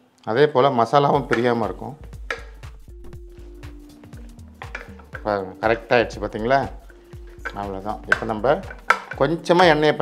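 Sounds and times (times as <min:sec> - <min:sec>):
soft background music: 0:00.3 - 0:10.0.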